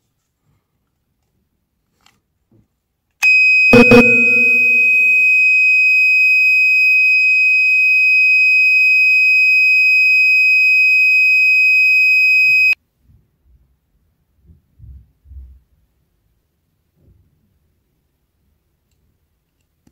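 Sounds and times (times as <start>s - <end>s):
piezo buzzer high-pitched tone: 3.3s - 6.2s, 7.5s - 12.8s.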